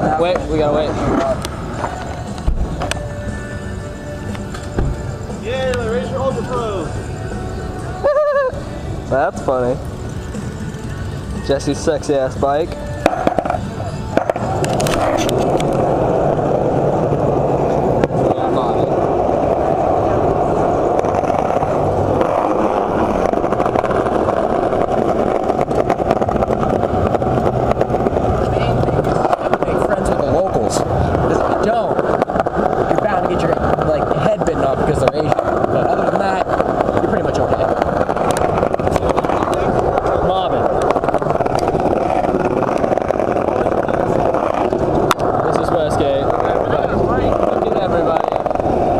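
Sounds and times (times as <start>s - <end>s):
small wheels rolling on pavement: 0.0s - 48.9s
wheels clicking over joints: 8.0s - 48.9s
wind buffeting microphone: 8.4s - 48.9s.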